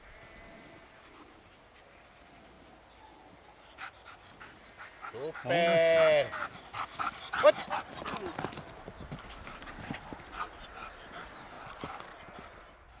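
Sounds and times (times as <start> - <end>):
dry grass rustling: 4.6 - 13.0.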